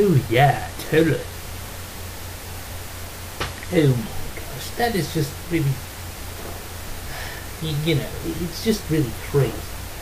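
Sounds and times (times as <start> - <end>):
low hum: 0.0 - 10.0
steady hiss: 0.0 - 10.0.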